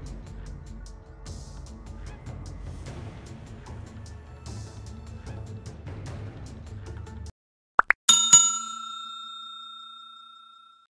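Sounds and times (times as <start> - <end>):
bell chime ringing: 8.1 - 10.9.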